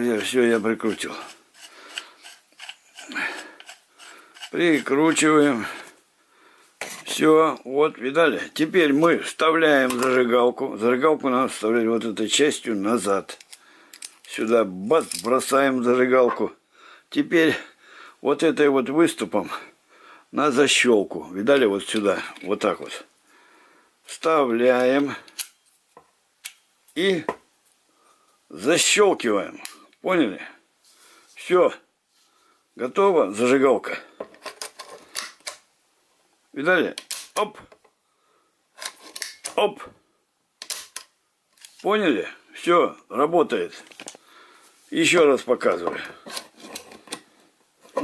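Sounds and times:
metal scraping on metal threads: 0.0 - 5.5.

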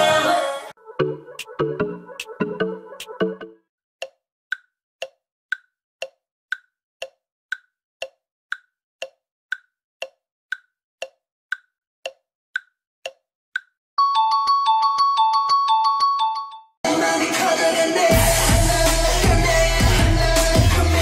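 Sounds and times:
clock ticking: 4.0 - 13.8.

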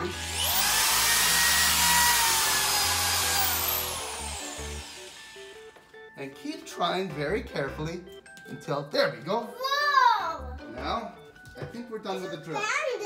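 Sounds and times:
electric drill whining: 0.0 - 5.7.

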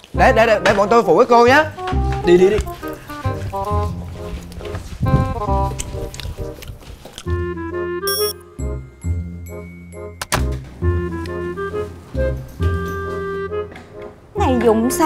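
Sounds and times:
light bouncy background music: 0.0 - 15.0.

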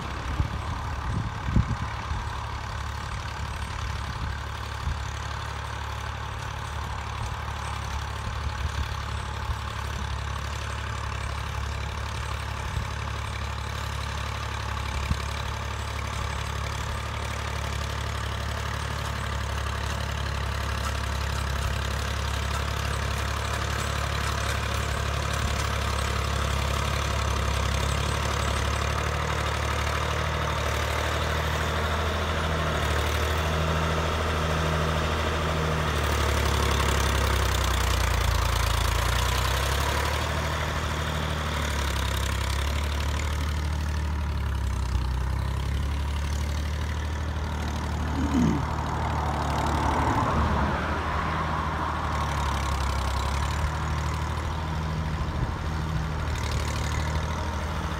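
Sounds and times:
harvester diesel engine: 0.0 - 57.9
tractor engine droning: 0.0 - 57.9.

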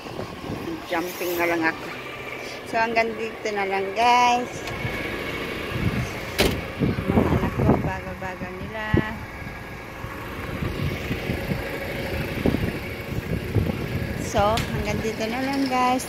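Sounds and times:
diesel truck engine idling: 0.0 - 16.0.

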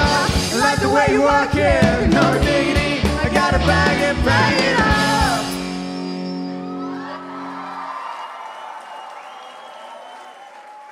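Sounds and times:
audience cheering and whooping: 6.4 - 10.9.

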